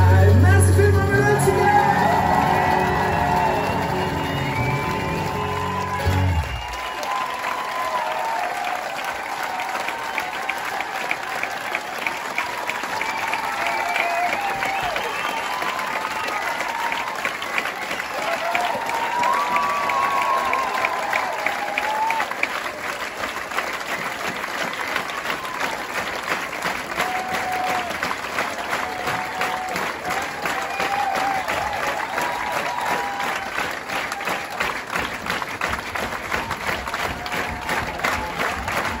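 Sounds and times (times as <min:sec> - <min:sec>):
crowd calling out: 0:00.0 - 0:11.7
audience applauding: 0:00.0 - 0:39.0.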